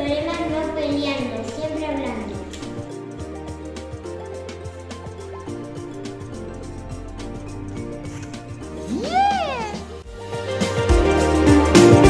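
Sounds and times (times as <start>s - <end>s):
background music: 0.0s - 12.0s
cat meowing: 8.9s - 9.9s.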